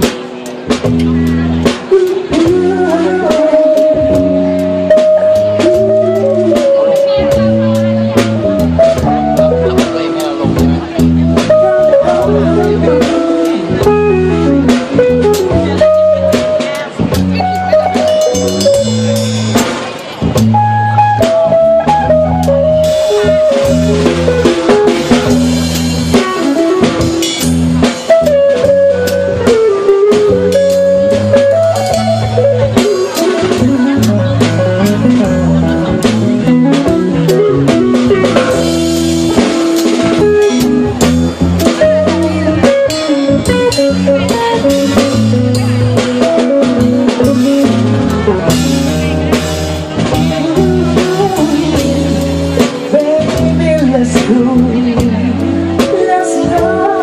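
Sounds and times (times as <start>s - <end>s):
live band playing: 0.0s - 57.0s
melodic lead line: 0.0s - 57.0s.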